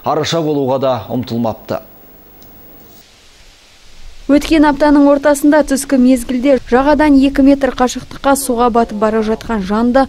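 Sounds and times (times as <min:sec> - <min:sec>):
low steady hiss: 0:00.0 - 0:10.0.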